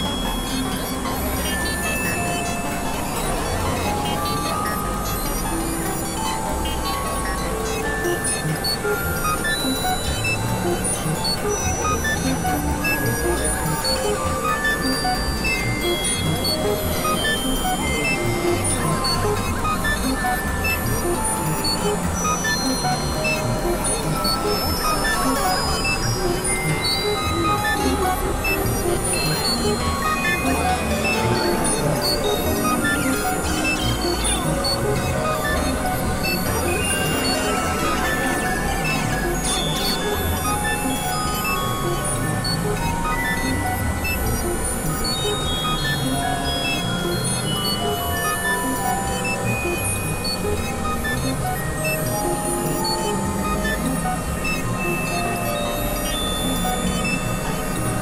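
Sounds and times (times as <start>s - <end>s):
experimental electronic music: 0.0s - 58.0s
synthesizer tones: 0.0s - 58.0s.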